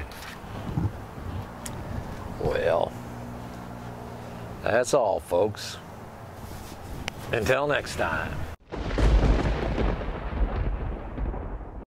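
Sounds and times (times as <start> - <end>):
deep rumble with rough hiss: 0.0 - 4.9.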